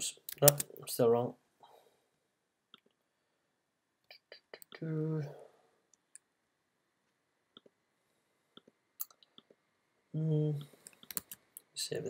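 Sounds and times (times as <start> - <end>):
man humming hmm: 4.4 - 5.4, 10.2 - 10.7
computer mouse clicks: 10.8 - 11.4.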